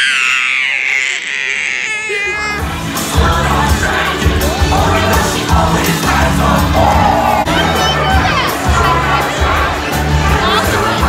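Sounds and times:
child squealing: 0.0 - 2.7.

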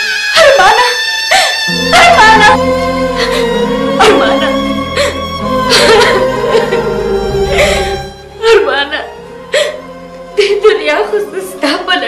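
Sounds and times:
background music sustained tones: 0.3 - 12.0
person sobbing: 1.4 - 8.0.

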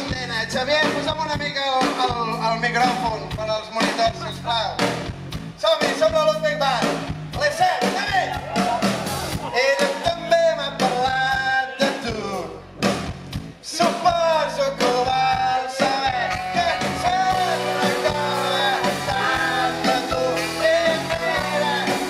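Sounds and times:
rock band playing: 0.0 - 22.0
lead singer vocal: 9.5 - 12.6, 13.6 - 22.0.

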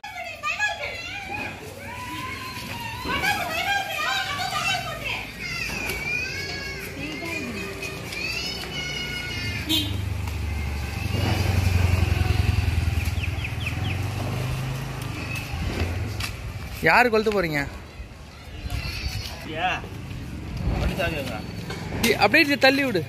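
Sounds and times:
children chattering: 0.1 - 13.0, 17.7 - 20.1
motorcycle engine running: 9.7 - 16.5.

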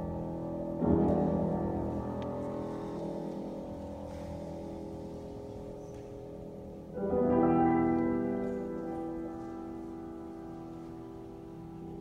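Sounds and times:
grand piano chord ringing: 0.0 - 12.0.

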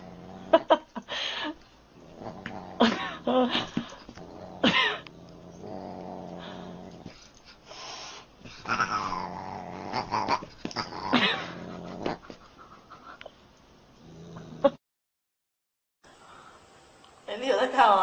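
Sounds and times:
dog growling: 0.0 - 0.8, 2.0 - 7.3, 8.5 - 12.5, 14.0 - 14.8.

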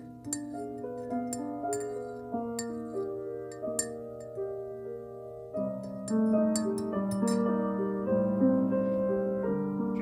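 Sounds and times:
background music: 0.0 - 10.0
spoon clinking in ceramic mug: 0.2 - 4.0, 5.8 - 7.5.

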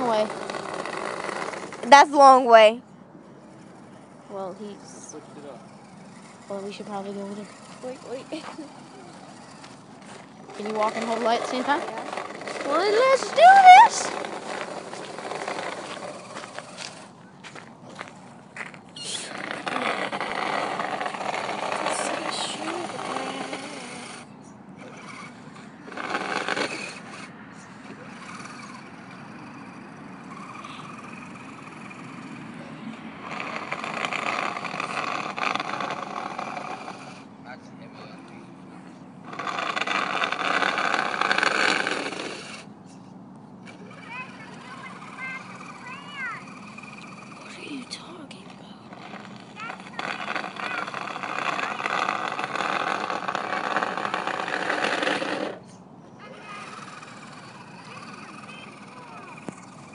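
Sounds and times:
rc truck plow scraping: 0.0 - 59.9.

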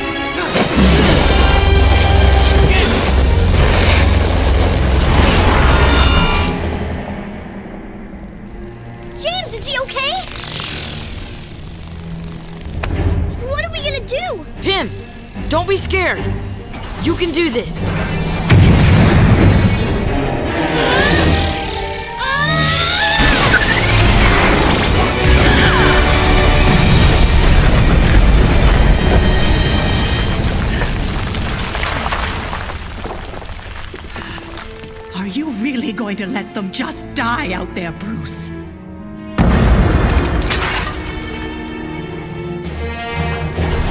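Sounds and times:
background film music: 0.0 - 32.3, 33.6 - 43.9
booming rock crash: 18.5 - 20.0, 25.2 - 35.0, 39.4 - 41.2
rubble falling: 26.7 - 35.2.

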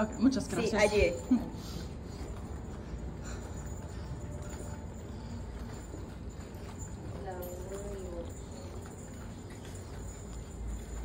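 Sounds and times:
footsteps on tiled floor: 0.0 - 11.0
steady low hum: 0.0 - 11.0.

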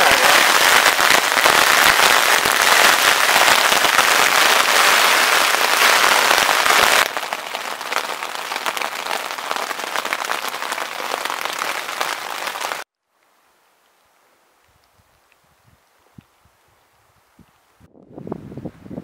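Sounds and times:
rain pattering on a tent: 0.0 - 17.1.

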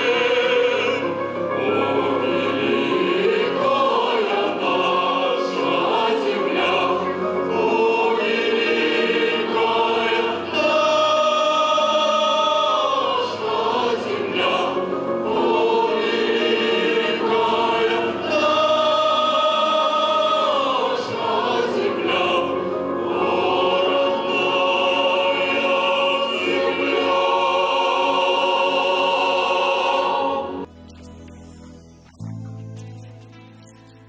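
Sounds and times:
mixed choir singing: 0.0 - 30.7.

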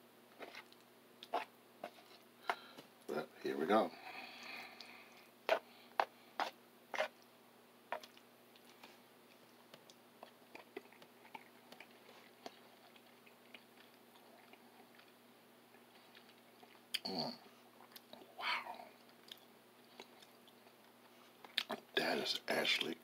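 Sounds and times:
person chewing food: 0.3 - 2.9, 4.2 - 7.3, 7.9 - 21.9
mouth smacks: 21.4 - 21.9.

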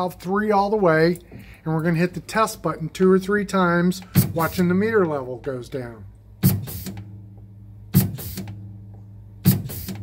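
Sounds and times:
steady low hum: 0.0 - 10.0
injection pump strokes: 4.0 - 4.8, 6.4 - 7.1, 7.9 - 8.6, 9.4 - 10.0.

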